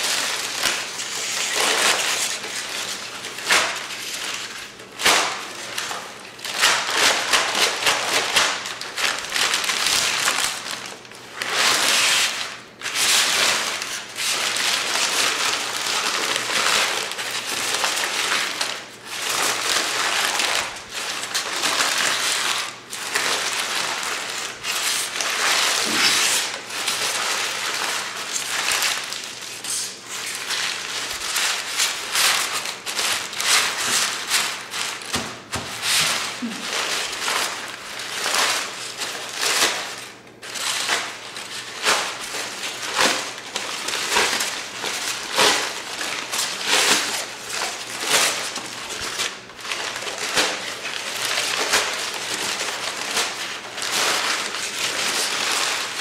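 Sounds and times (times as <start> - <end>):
paper crumpling and crinkling: 0.0 - 56.0.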